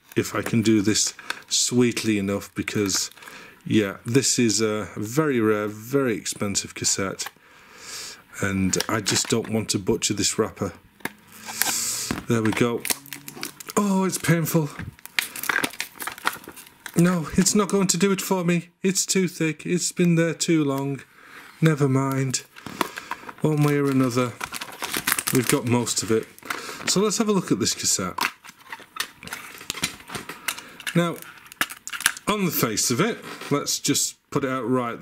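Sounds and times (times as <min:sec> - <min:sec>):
plastic wrapper crinkling: 0:00.0 - 0:04.1, 0:08.6 - 0:10.0, 0:11.0 - 0:18.0, 0:21.6 - 0:32.7.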